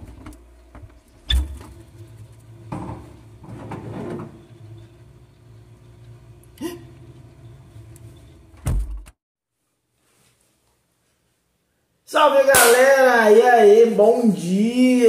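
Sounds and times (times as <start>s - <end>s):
refrigerator door thump: 8.6s - 9.1s.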